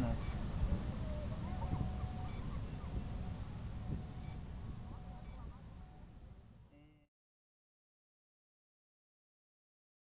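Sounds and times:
steady low rumble: 0.0s - 6.7s
faint distant high calls: 0.0s - 7.1s
faint thin tone: 1.0s - 7.1s.

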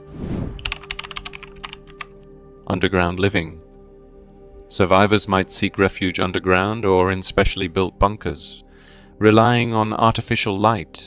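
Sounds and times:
whoosh: 0.0s - 0.6s
faint background music: 0.0s - 11.0s
keyboard typing clicks: 0.6s - 2.2s.

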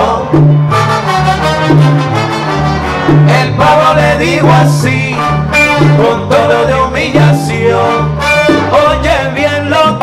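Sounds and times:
trombone section: 0.0s - 10.0s
walking bass line: 0.0s - 10.0s.

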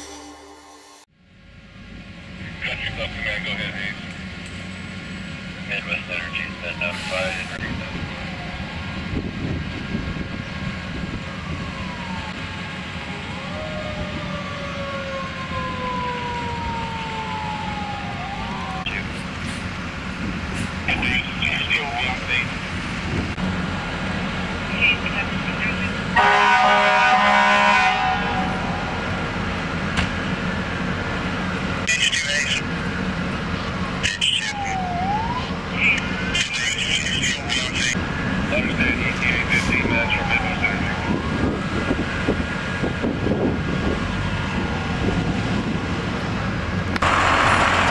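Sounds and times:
emergency sirens wailing: 1.6s - 47.9s
loud horn blast: 26.2s - 29.2s.

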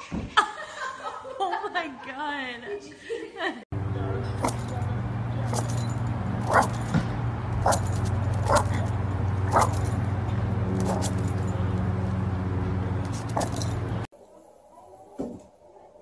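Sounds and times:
dogs barking: 5.4s - 13.9s.

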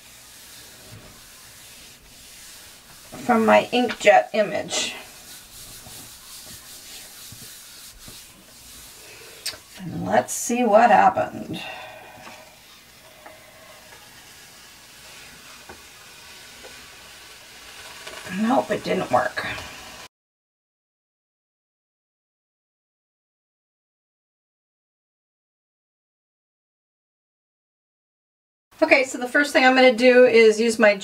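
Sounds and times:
hands rubbing on paper: 0.0s - 9.8s.

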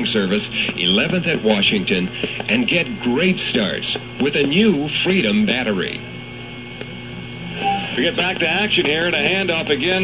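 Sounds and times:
tape and radio hiss: 0.0s - 10.0s
thin high whine: 0.0s - 10.0s
low hum: 0.6s - 10.0s.

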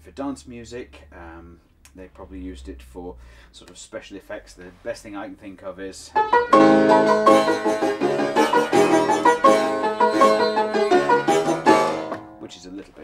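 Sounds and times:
buzzing fortepiano dance tune: 6.2s - 12.4s.

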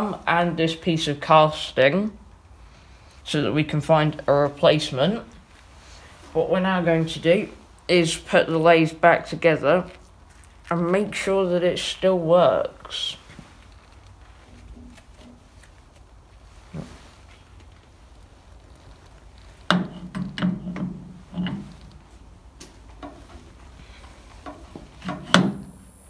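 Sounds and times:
quiet handling: 2.2s - 26.0s
metallic clunks and knocks: 19.7s - 21.8s, 24.4s - 25.7s.

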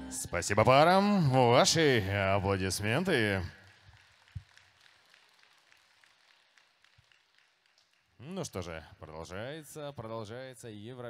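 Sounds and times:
audience applause: 1.3s - 8.1s.

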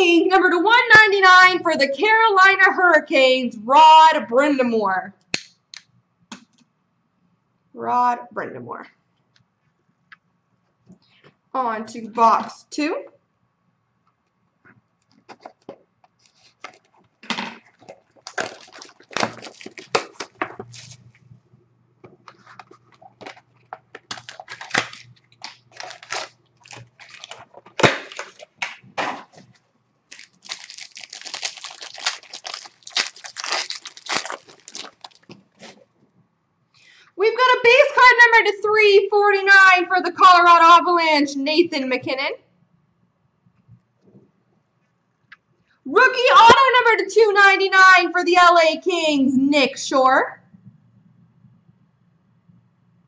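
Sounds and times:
plastic and cardboard tearing: 17.6s - 21.0s, 22.3s - 29.5s, 30.1s - 35.8s.

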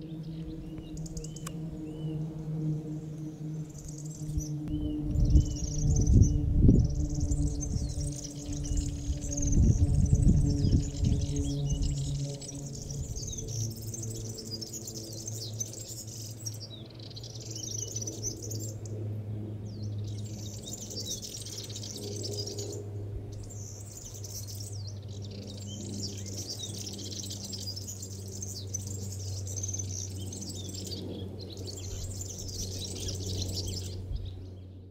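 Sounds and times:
steady low hum: 0.0s - 34.9s
warbler singing harsh phrases: 19.8s - 34.6s.

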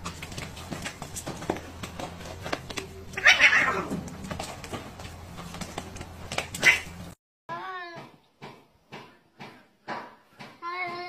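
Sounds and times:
scuffling knocks: 0.0s - 3.2s
cat yowling angrily: 3.2s - 3.9s.

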